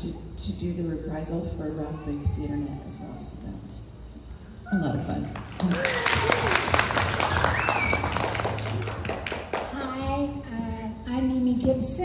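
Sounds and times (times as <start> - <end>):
hands clapping: 5.3 - 10.0.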